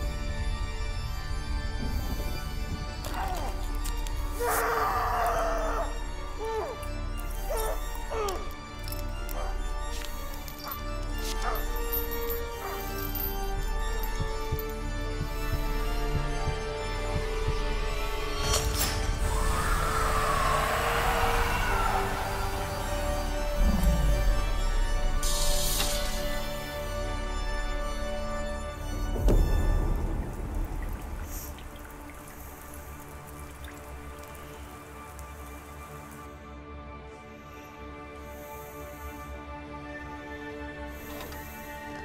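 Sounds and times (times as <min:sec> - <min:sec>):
low music drone: 0:00.0 - 0:42.0.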